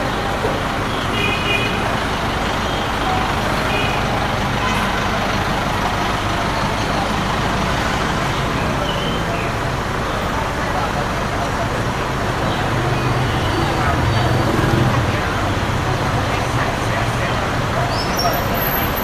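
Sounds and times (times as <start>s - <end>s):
passing motorbikes and cars: 0.0s - 19.0s.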